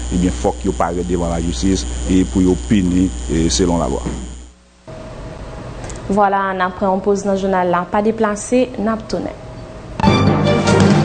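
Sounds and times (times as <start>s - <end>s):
man speaking: 0.0s - 4.4s
low hiss: 0.0s - 5.0s
low electrical hum: 0.0s - 10.0s.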